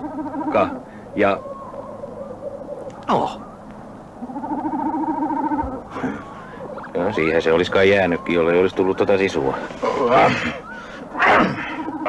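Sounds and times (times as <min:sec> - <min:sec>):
electronic tone with fast wobble: 0:04.2 - 0:10.8.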